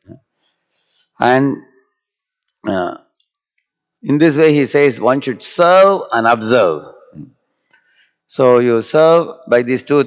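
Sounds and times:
man speaking into a microphone: 0:01.2 - 0:01.8, 0:02.6 - 0:03.2, 0:04.0 - 0:07.4, 0:08.3 - 0:10.0.

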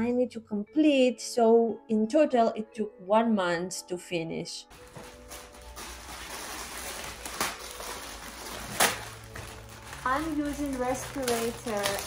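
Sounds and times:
plastic packaging crinkling: 0:04.7 - 0:12.0
sharp plastic crackles: 0:04.8 - 0:12.0.

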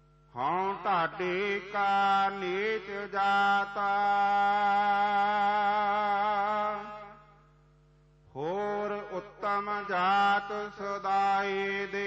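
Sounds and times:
man singing long notes: 0:08.3 - 0:12.0
harmonium drone: 0:08.4 - 0:12.0.

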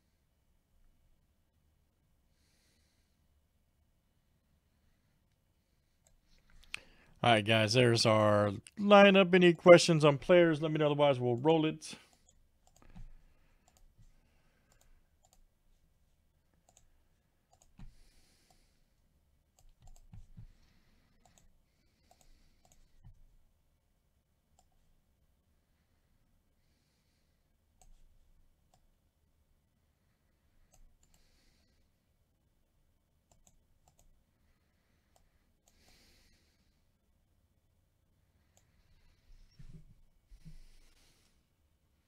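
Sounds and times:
computer mouse and keyboard clicks: 0:19.6 - 0:20.6
soft rustles or breaths: 0:38.2 - 0:41.7.

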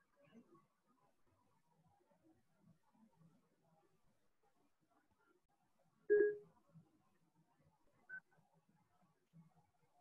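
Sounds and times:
electronic beeps: 0:06.1 - 0:06.4.

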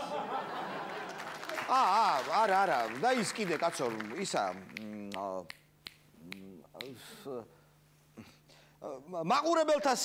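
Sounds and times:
man snapping fingers: 0:04.7 - 0:07.1.

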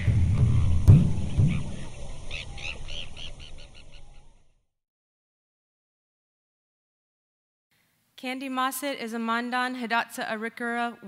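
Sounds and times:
sharp hit: 0:00.0 - 0:02.9
whoosh with low rumble: 0:00.0 - 0:03.9.

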